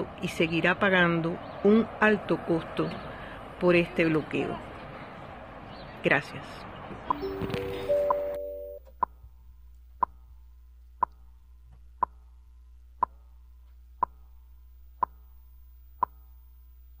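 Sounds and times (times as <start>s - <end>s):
faint low hum: 6.7s - 17.0s
sharp pitched clock tick: 14.0s - 14.2s, 15.0s - 15.3s, 16.0s - 16.3s.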